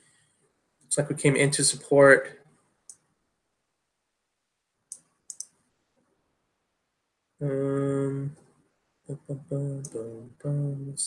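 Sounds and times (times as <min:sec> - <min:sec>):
computer mouse clicks: 0:04.9 - 0:05.6.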